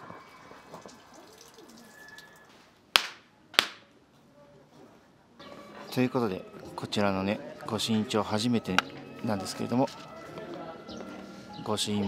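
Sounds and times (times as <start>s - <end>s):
sharp hand claps: 3.0s - 3.8s.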